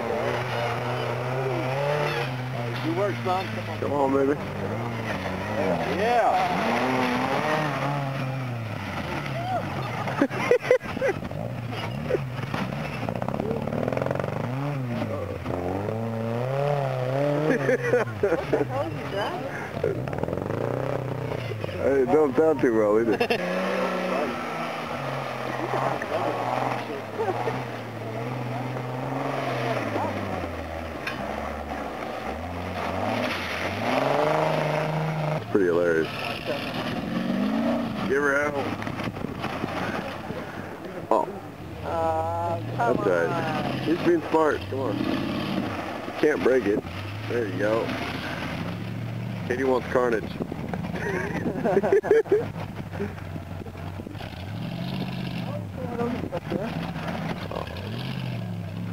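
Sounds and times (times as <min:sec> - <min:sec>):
buggy engine revving hard: 0:00.0 - 0:58.9.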